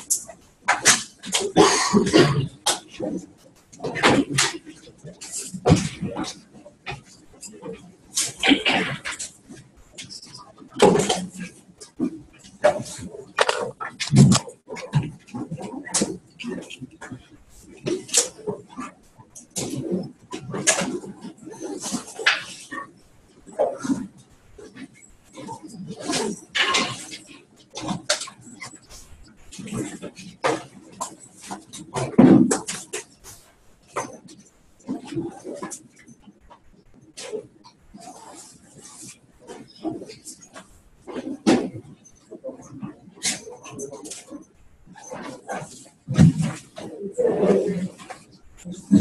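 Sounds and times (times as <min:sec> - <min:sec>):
people moving about: 0:00.0 - 0:49.0
people talking: 0:00.8 - 0:03.2, 0:07.4 - 0:09.3, 0:10.0 - 0:18.9, 0:24.6 - 0:29.0, 0:46.2 - 0:49.0
indistinct voices: 0:48.6 - 0:49.0.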